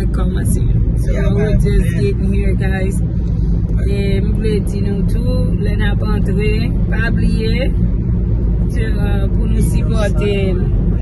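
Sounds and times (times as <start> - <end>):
car engine and road noise: 0.0 - 11.0
person speaking: 1.0 - 2.4, 9.4 - 10.6.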